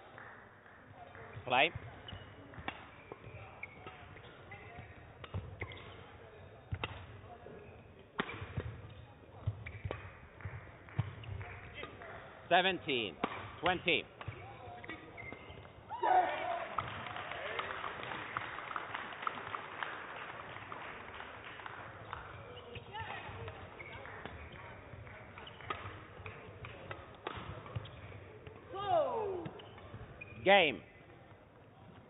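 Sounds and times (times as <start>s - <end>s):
shoes squeaking on court: 1.1s - 15.9s, 22.0s - 32.0s
racket striking shuttlecock: 1.8s - 6.0s, 6.7s - 7.2s, 8.2s - 12.1s, 13.1s - 15.7s, 25.2s - 30.0s
player shouting: 15.9s - 16.7s, 28.7s - 29.4s.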